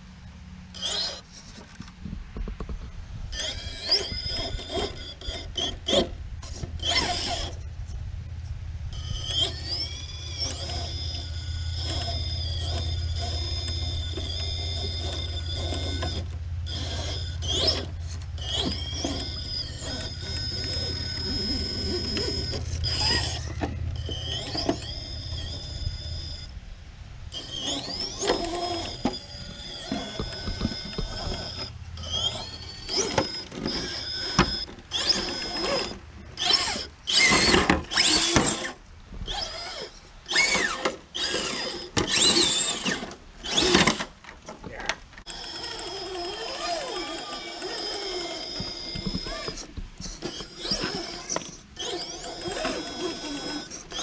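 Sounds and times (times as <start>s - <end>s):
electric motor whining: 0.7s - 26.6s, 27.3s - 44.1s, 45.2s - 54.0s
low rumble: 4.3s - 27.4s
tyres knocking and scraping rocks: 9.0s - 26.4s, 27.3s - 54.0s.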